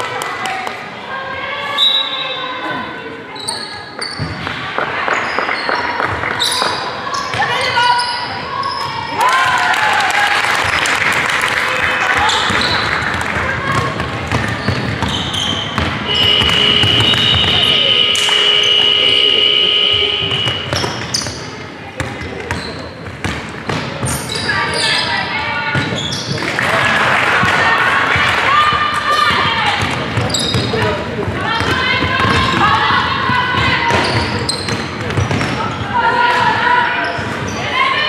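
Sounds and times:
players calling out: 1.2s - 38.0s
basketball bouncing on wooden floor: 12.4s - 17.7s, 20.3s - 21.4s.

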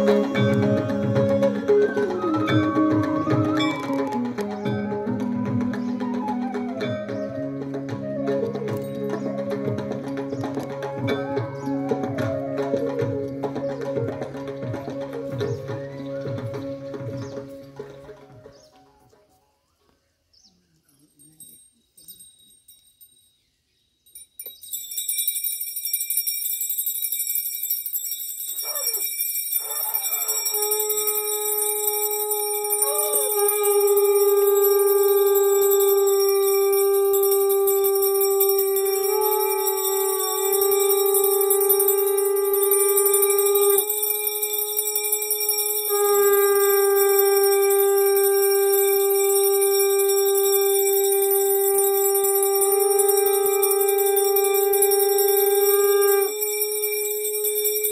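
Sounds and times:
conch shell blowing: 0.0s - 13.5s, 29.6s - 57.9s
high steady ringing: 21.0s - 57.9s.

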